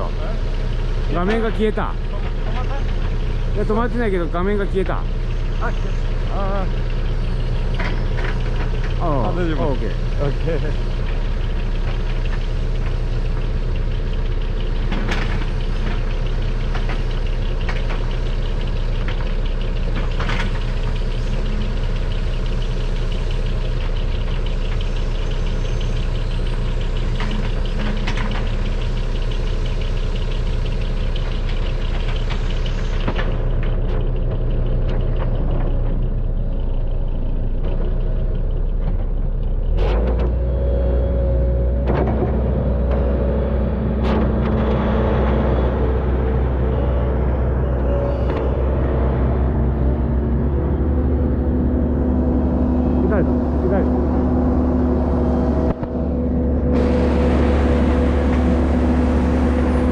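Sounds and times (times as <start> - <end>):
excavator diesel engine: 0.0 - 59.9
short clunks: 41.6 - 51.2.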